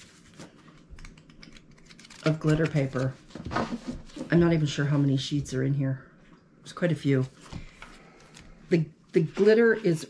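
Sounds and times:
stiff card sheets rustling: 0:00.0 - 0:04.5.

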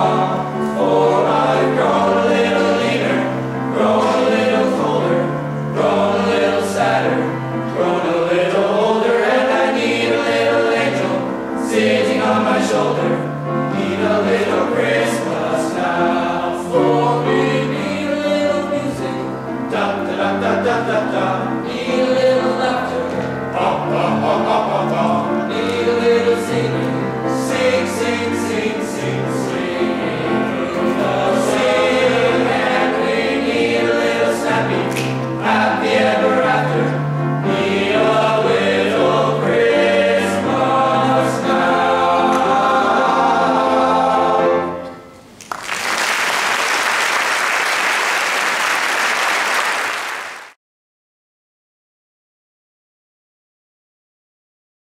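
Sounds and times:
choir singing in harmony: 0:00.0 - 0:45.1
piano accompaniment: 0:00.0 - 0:48.6
single sharp clap: 0:34.9 - 0:35.2.

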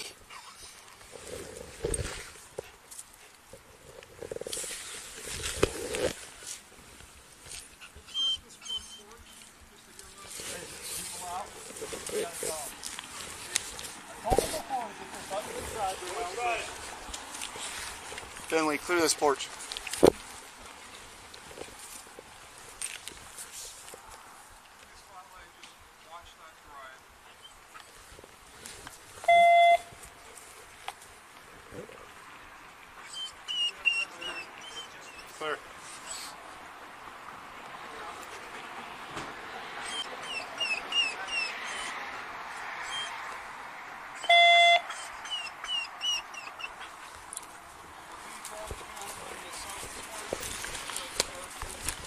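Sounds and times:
background hiss: 0:00.0 - 0:52.0
electronic beep: 0:29.3 - 0:29.9.

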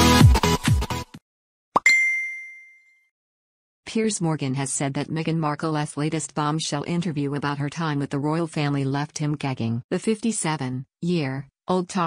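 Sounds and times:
bell-like notification ding: 0:01.8 - 0:03.1.

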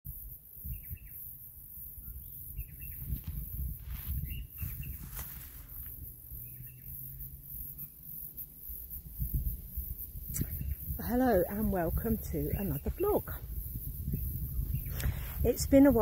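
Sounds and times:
bird chirping: 0:00.2 - 0:16.0.

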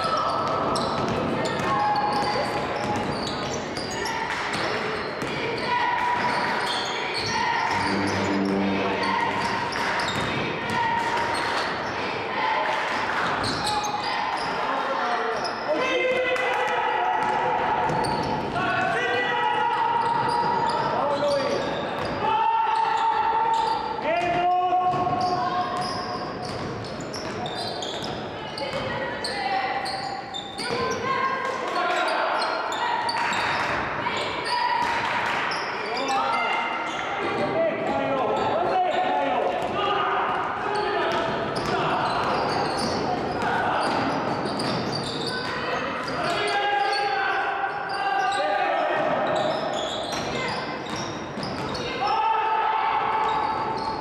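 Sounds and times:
people calling out: 0:05.4 - 0:11.4.

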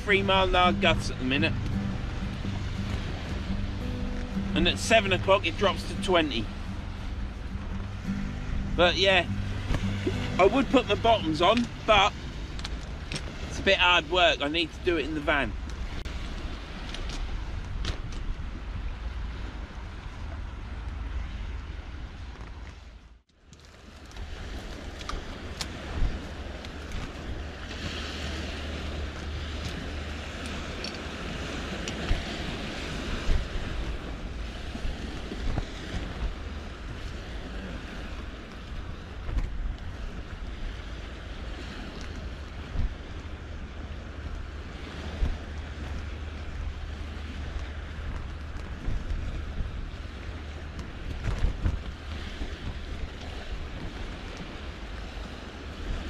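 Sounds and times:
water washing on shore: 0:00.0 - 0:56.0
wind buffeting microphone: 0:00.0 - 0:56.0.

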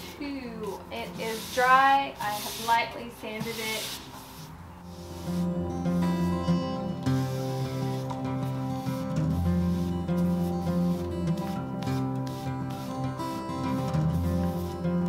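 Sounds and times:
acoustic guitar chords: 0:04.8 - 0:15.0.

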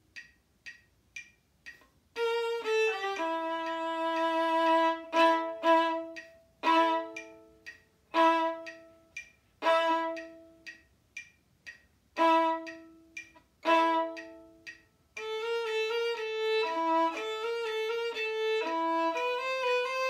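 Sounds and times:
metronome clicking: 0:00.0 - 0:20.0
violin playing: 0:02.2 - 0:10.6, 0:12.2 - 0:14.6, 0:15.2 - 0:20.0.

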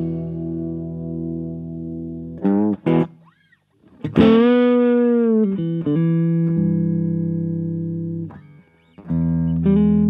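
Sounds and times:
electric guitar chord ringing: 0:00.0 - 0:02.7.

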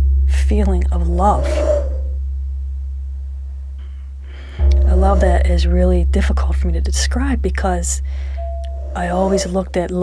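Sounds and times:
faint higher tone: 0:00.0 - 0:10.0
low humming tone: 0:00.0 - 0:10.0.

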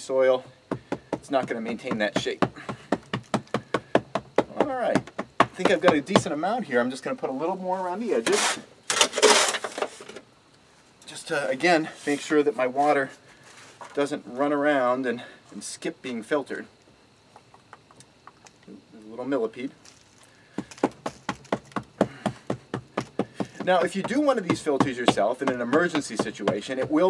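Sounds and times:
hand patting soil: 0:00.7 - 0:06.4, 0:19.8 - 0:27.0
shovel scraping in metal wheelbarrow: 0:08.2 - 0:10.2.

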